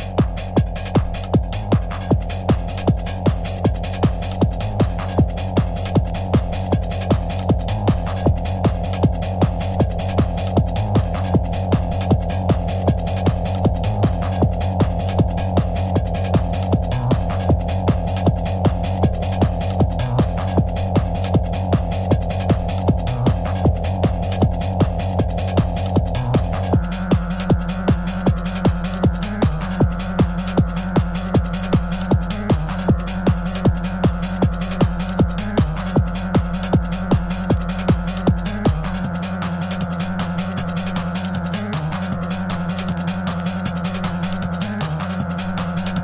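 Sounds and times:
hard trance music: 0:00.0 - 0:46.0
low droning bass: 0:00.0 - 0:46.0
pounding kick drum: 0:00.0 - 0:46.0.

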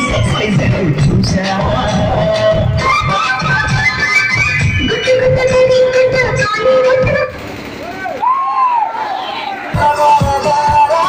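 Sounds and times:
band music with drum beat: 0:00.0 - 0:08.7, 0:09.7 - 0:11.0.

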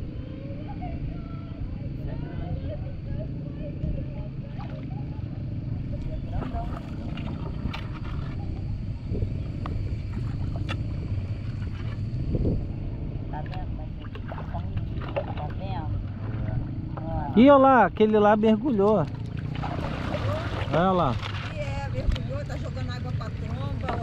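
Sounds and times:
faint distant voices: 0:00.0 - 0:11.2
wind on microphone: 0:00.0 - 0:17.4
river water rumble: 0:00.0 - 0:24.0.

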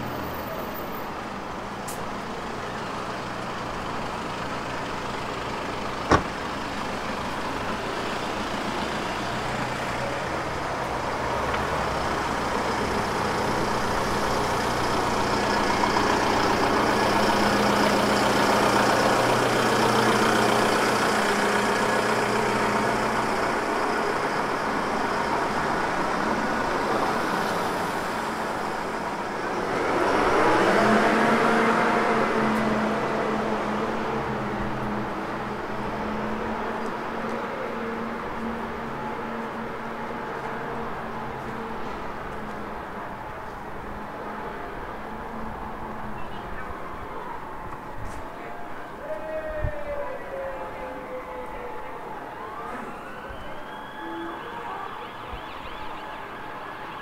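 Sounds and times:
truck engine running: 0:01.3 - 0:26.3.

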